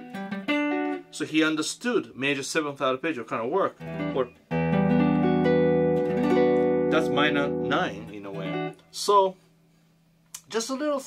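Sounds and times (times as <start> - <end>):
electric guitar arpeggio: 0.0 - 1.0, 3.8 - 8.8.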